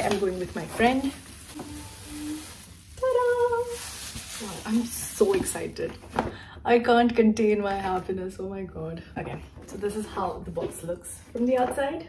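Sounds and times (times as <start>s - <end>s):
plastic wrap crinkling: 0.0s - 6.1s.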